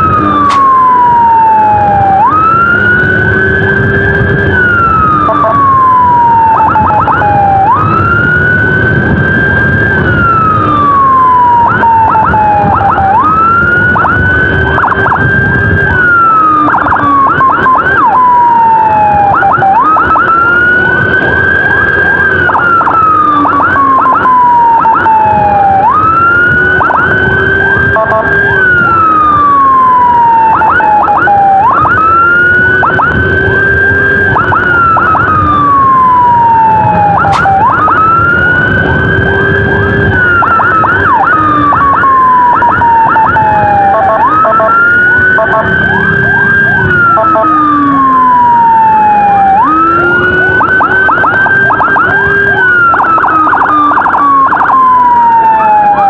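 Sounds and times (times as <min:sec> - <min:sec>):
rapid siren sweeps: 0:00.0 - 0:56.0
vehicle engine and road rumble: 0:00.0 - 0:56.0
wailing electronic siren: 0:00.0 - 0:56.0.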